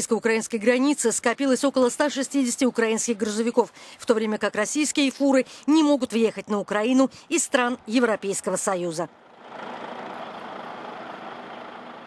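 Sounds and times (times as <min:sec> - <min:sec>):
traffic noise: 0:00.0 - 0:12.0
heavy lorry engines running: 0:09.1 - 0:12.0.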